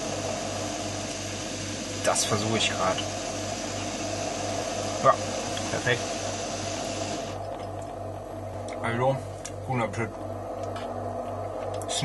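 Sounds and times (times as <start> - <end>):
gas stove burner hissing: 0.0 - 9.4.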